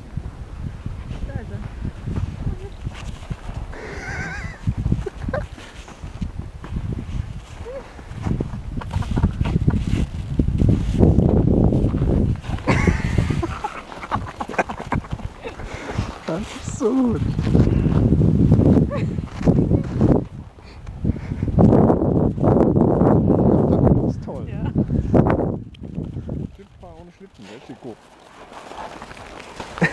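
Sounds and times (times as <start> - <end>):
dog rolling through snow: 27.4 - 29.9.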